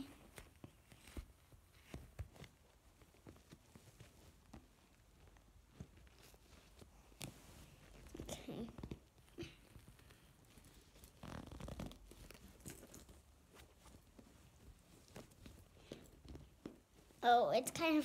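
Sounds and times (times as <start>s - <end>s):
rustling and handling noises: 0.0s - 18.0s.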